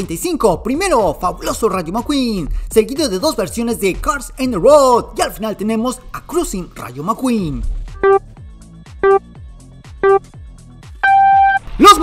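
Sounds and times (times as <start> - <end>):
countdown beeps: 8.0 - 8.2, 9.0 - 9.2, 10.0 - 10.3, 11.0 - 11.7
long high start beep: 8.0 - 8.2, 9.0 - 9.2, 10.0 - 10.2, 11.0 - 11.7.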